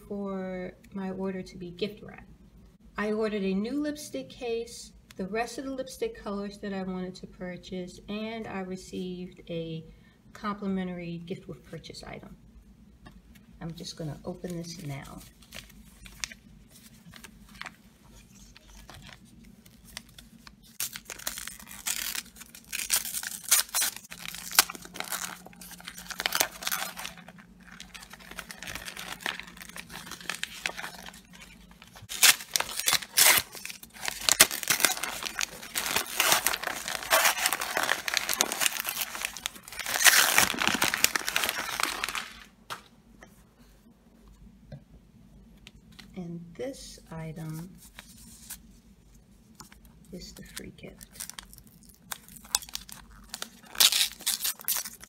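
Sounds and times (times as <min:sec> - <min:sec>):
wrapping paper tearing and crinkling: 0:14.8 - 0:42.5, 0:50.4 - 0:55.0.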